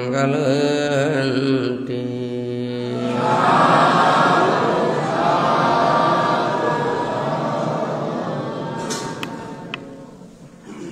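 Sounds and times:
man chanting: 0.0s - 5.4s
group chanting: 2.0s - 10.6s.

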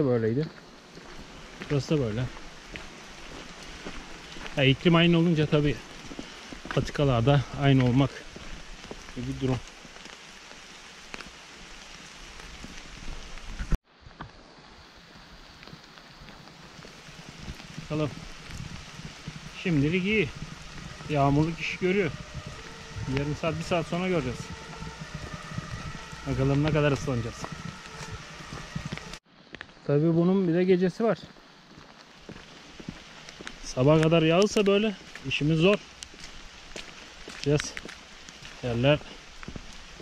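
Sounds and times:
steady rain falling: 0.1s - 40.0s
raindrops ticking: 15.1s - 29.2s.

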